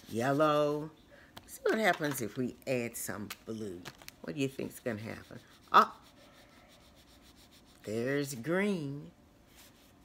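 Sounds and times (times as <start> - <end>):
person speaking: 1.5 - 7.0
gel pen scratching on paper: 4.3 - 8.4.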